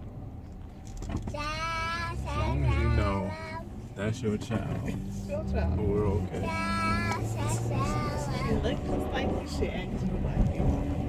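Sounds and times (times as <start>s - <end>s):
low road rumble: 0.0s - 11.0s
child's high-pitched voice: 1.3s - 3.7s, 6.3s - 8.8s
adult talking: 2.3s - 6.7s.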